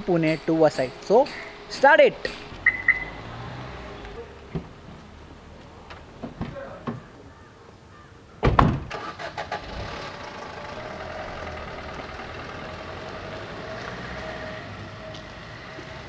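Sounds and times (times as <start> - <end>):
car engine running: 0.0 - 5.6, 8.9 - 16.0
car doors slamming shut: 8.4 - 8.9.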